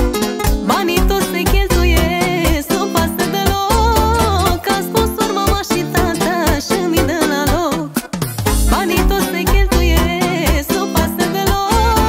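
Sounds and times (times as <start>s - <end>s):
party band music: 0.0s - 12.0s.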